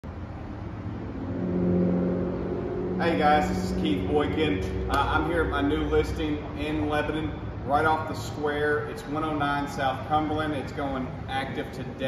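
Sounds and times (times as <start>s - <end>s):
vehicle engine running: 0.0s - 8.2s.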